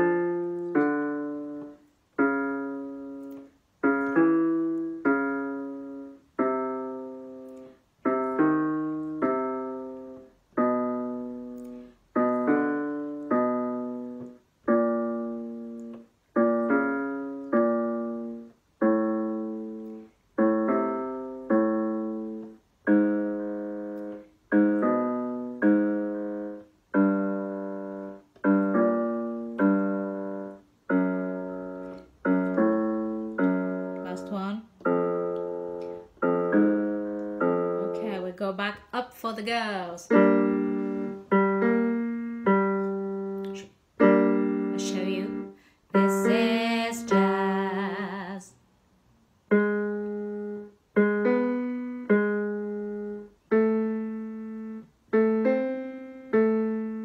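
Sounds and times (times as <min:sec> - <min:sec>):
electronic keyboard piano notes: 0:00.0 - 0:38.7, 0:39.3 - 0:48.1, 0:49.5 - 0:57.0.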